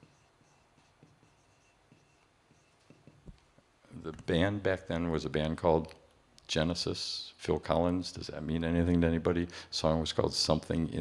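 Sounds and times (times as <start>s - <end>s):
marker squeaking on whiteboard: 0.0s - 3.4s.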